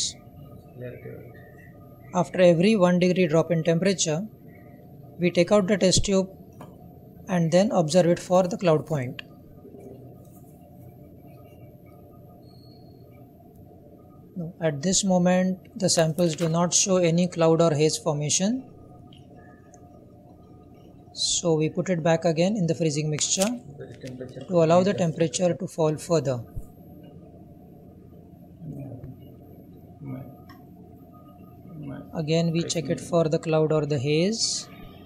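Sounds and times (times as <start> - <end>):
room background noise: 0.0 - 35.0.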